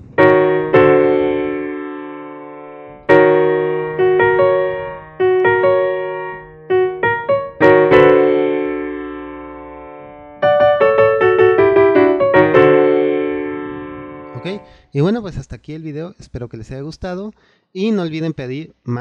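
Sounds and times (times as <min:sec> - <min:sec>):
keyboard piano chords: 0:00.0 - 0:14.8.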